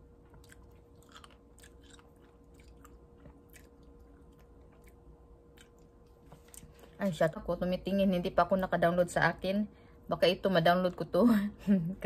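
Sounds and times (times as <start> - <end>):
chewing blueberries: 0.0 - 7.0.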